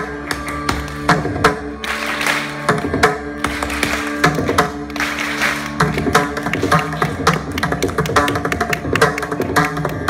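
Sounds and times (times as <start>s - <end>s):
mridangam drum strokes: 0.0s - 10.0s.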